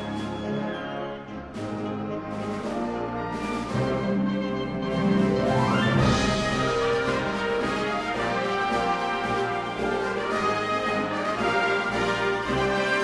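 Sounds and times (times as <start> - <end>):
trumpets and french horns: 0.0 - 13.0
wind band playing sustained chords: 0.0 - 13.0.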